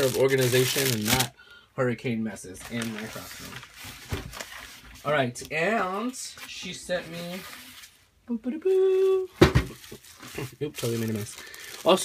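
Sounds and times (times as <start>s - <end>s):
object knocked over thump: 9.4s - 9.8s.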